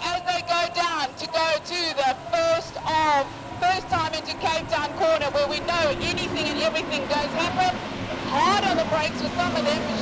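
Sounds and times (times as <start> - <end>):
race car engines droning: 0.0 - 10.0
race commentator talking: 0.0 - 10.0.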